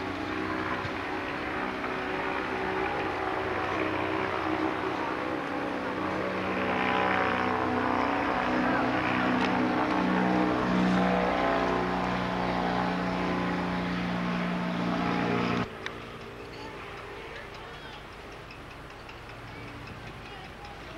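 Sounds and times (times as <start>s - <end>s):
blimp propeller engines droning: 0.0s - 20.9s.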